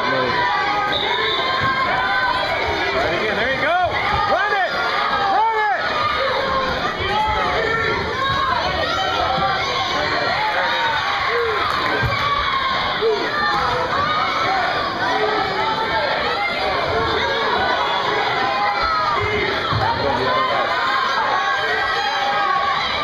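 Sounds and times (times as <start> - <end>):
spectators shouting and cheering: 0.0 - 23.0.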